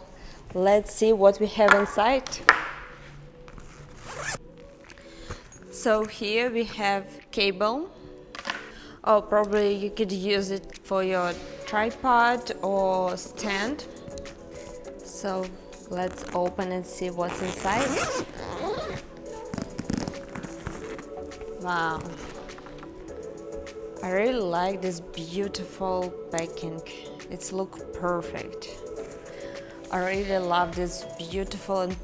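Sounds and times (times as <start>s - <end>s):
backpack zipper pulled open: 3.5s - 4.5s, 16.0s - 16.5s, 17.3s - 22.9s.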